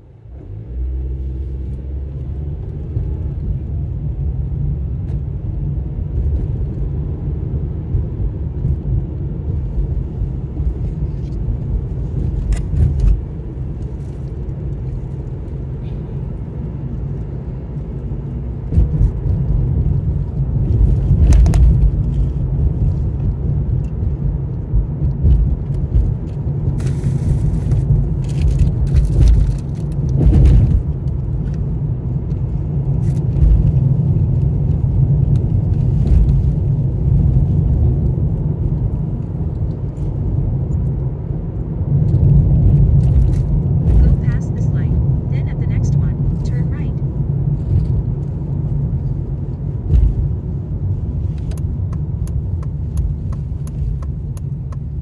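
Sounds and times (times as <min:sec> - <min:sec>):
tyre and engine rumble: 0:00.0 - 0:55.0.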